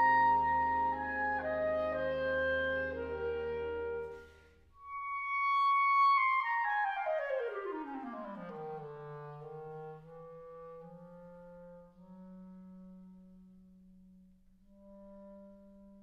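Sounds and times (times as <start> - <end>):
clarinet playing: 0.0 - 13.8.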